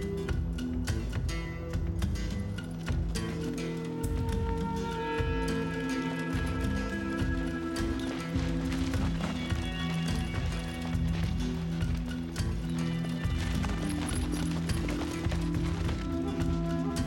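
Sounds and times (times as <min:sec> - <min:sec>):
tense orchestral film score: 0:00.0 - 0:17.0.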